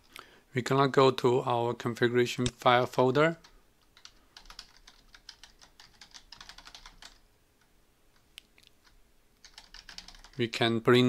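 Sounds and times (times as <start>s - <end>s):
faint keyboard typing: 2.5s - 10.5s.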